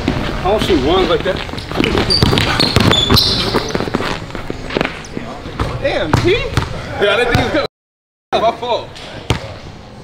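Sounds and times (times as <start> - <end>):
sneaker squeak: 1.5 - 5.8
basketball bouncing on hardwood: 1.7 - 3.7.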